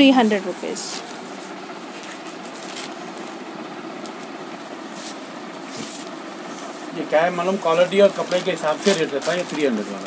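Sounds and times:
steady background noise: 0:00.0 - 0:10.0
fabric rustling: 0:04.1 - 0:10.0.

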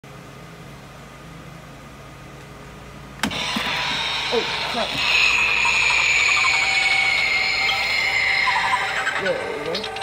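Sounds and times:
faint steady hum: 0:00.0 - 0:10.0
hissing mechanical prop noise: 0:03.2 - 0:10.0.

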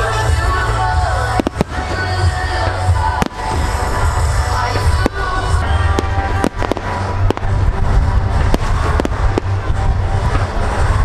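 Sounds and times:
fireworks bangs: 0:00.0 - 0:11.0
loud bass-heavy music: 0:00.0 - 0:11.0.

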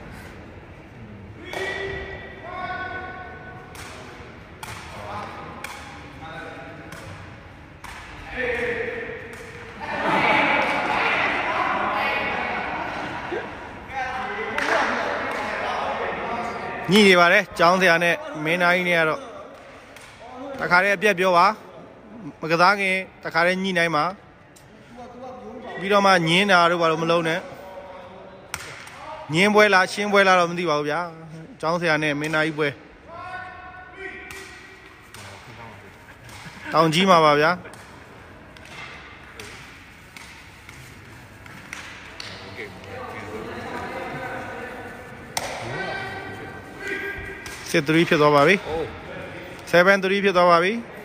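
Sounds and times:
spectators' voices echoing: 0:00.0 - 0:51.0.

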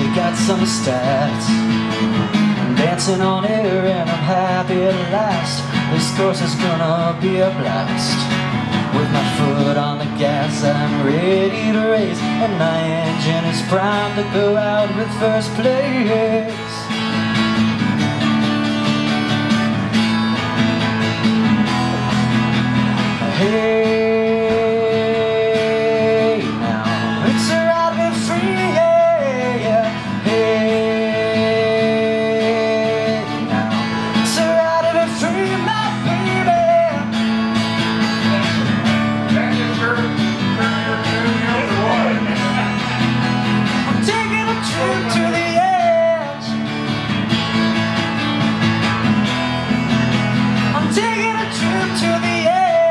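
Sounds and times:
acoustic guitar strumming: 0:00.0 - 0:52.9
sliding bending guitar melody notes: 0:00.0 - 0:52.9.

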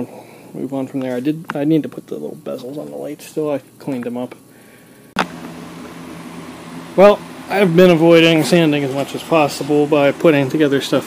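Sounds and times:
low machine hum with hiss: 0:00.0 - 0:11.0.

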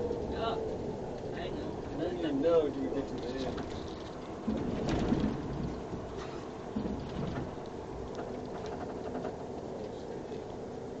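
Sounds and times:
bus bumps: 0:00.0 - 0:09.6
bus engine and road noise: 0:00.0 - 0:11.0.

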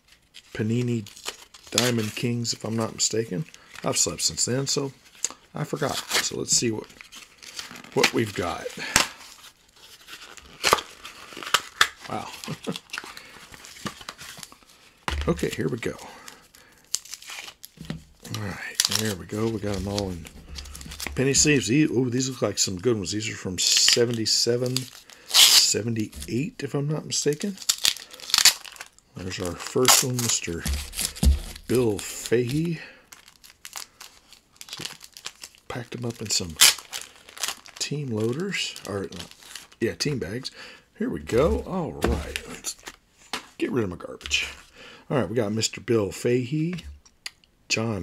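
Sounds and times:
paper crinkling: 0:05.0 - 0:26.5, 0:27.3 - 0:40.0
tape and paper ripping: 0:07.0 - 0:14.6, 0:16.9 - 0:21.7, 0:23.7 - 0:26.4, 0:27.4 - 0:35.6.

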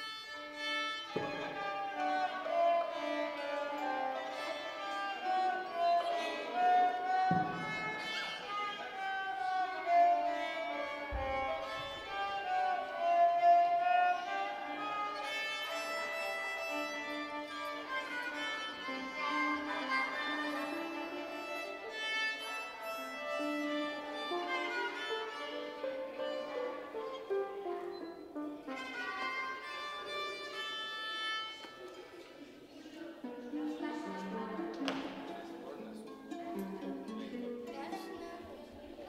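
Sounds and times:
children playing violins: 0:00.0 - 0:39.0.

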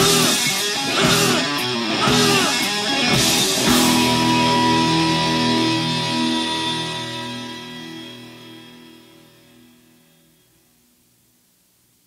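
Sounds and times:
guitar and bass chord held: 0:00.0 - 0:10.3.

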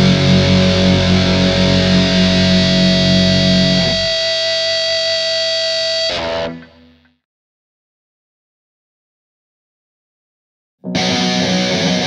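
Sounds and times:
distorted electric guitar chord: 0:00.0 - 0:07.2, 0:10.9 - 0:12.0.

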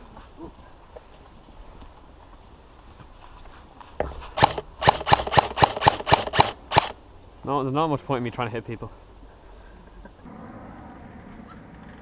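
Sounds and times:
airsoft gun shots: 0:04.4 - 0:07.0.

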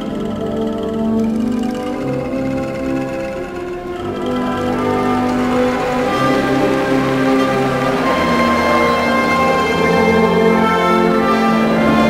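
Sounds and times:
military band playing held chords: 0:00.0 - 0:12.0.

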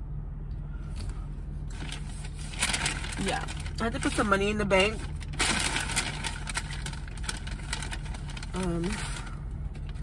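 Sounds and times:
car engine hum inside cabin: 0:00.0 - 0:10.0.

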